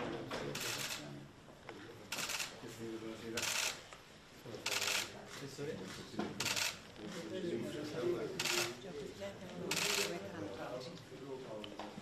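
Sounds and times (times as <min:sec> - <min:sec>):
camera shutters clicking rapidly: 0:05.9 - 0:06.8, 0:08.4 - 0:08.8.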